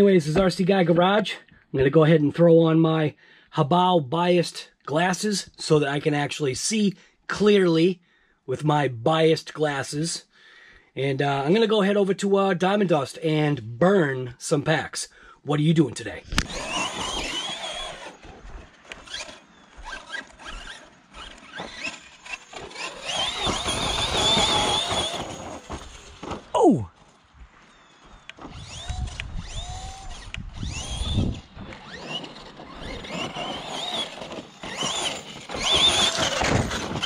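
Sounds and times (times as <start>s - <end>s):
electric motor whine: 16.3s - 37.0s.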